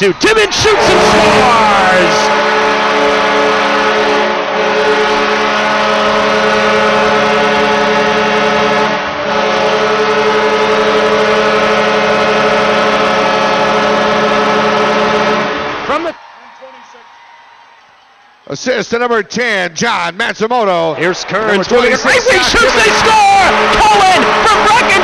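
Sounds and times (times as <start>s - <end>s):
crowd cheering: 0.0s - 25.0s
arena goal horn blaring: 0.1s - 17.1s, 21.7s - 25.0s.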